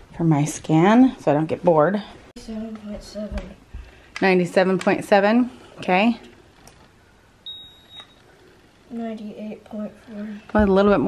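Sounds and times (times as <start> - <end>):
ear thermometer high beep: 7.4 - 8.2.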